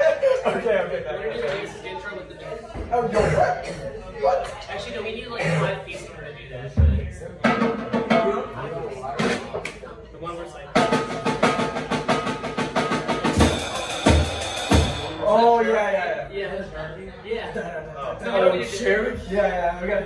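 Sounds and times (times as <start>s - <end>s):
people talking: 0.0s - 11.2s, 12.8s - 20.0s
snare and tom hits: 10.8s - 15.2s
cymbal and snare strokes: 13.1s - 15.2s.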